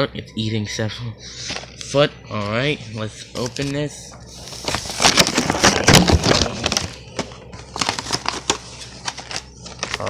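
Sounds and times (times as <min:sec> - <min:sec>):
plastic packaging crinkling: 0:03.4 - 0:10.0.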